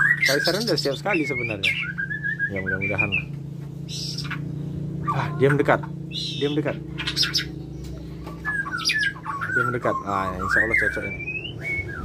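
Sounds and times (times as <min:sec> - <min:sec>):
bird chirping: 0:00.0 - 0:12.0
steady low hum: 0:00.0 - 0:12.0.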